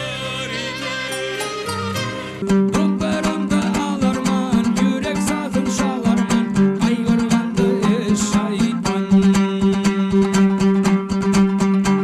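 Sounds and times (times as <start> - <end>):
rapidly plucked lute: 0.0 - 12.0.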